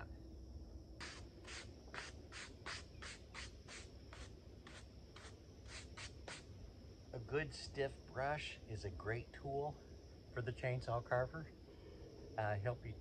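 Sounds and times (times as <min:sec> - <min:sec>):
brush sweeping sawdust off wood: 0:01.0 - 0:06.4.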